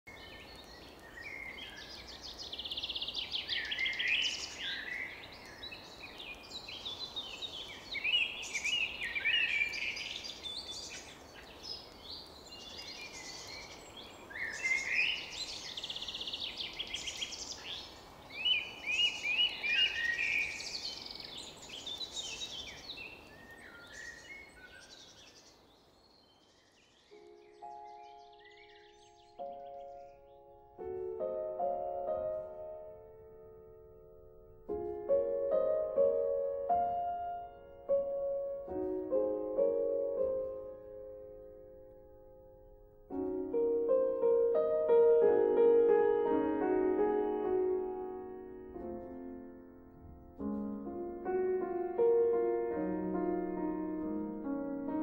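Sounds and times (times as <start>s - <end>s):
outdoor ambience hiss: 0.1s - 55.0s
songbirds singing: 0.1s - 55.0s
soft piano notes: 27.1s - 55.0s.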